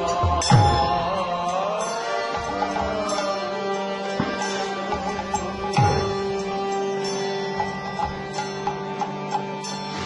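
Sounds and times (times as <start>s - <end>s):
harmonium held notes: 0.0s - 10.0s.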